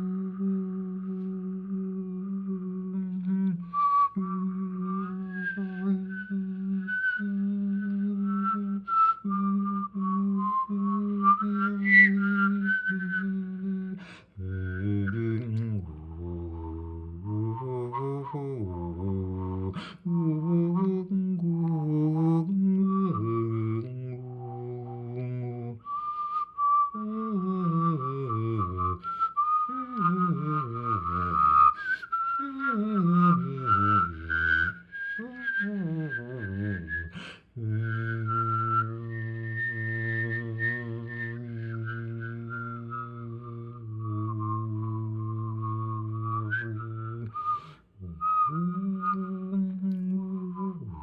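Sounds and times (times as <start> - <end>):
person humming low sung note: 0.0 - 26.0, 26.9 - 51.0
person whistling a melody: 0.0 - 51.0.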